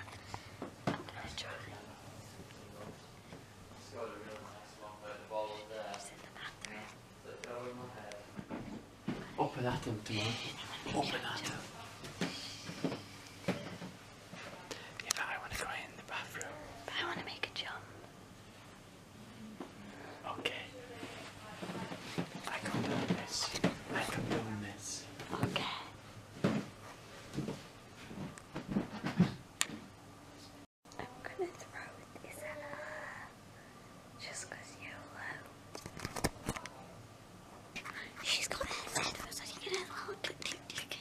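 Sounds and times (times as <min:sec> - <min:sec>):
man whispering: 0:01.0 - 0:02.9, 0:03.9 - 0:08.2, 0:09.3 - 0:11.7, 0:15.0 - 0:17.8, 0:20.2 - 0:20.9, 0:22.4 - 0:25.9
person whispering: 0:10.0 - 0:11.7, 0:15.0 - 0:17.8, 0:22.5 - 0:25.9, 0:37.8 - 0:41.0.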